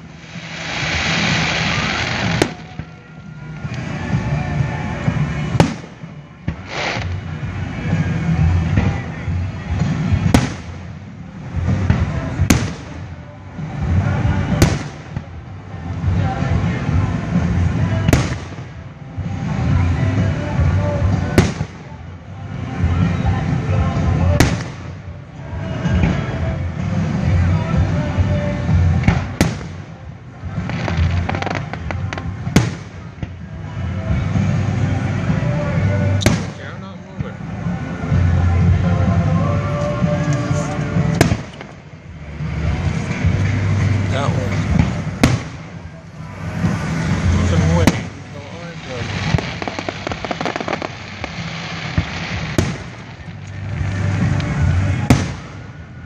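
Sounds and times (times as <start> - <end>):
low rumble: 0.0 - 56.0
firework bang with echo: 0.5 - 2.9, 5.6 - 7.3, 10.2 - 10.9, 11.8 - 13.0, 14.6 - 15.3, 18.1 - 18.8, 21.4 - 21.9, 24.4 - 25.0, 29.0 - 29.9, 30.7 - 33.4, 36.2 - 36.7, 41.1 - 41.7, 44.6 - 53.2, 55.0 - 55.6.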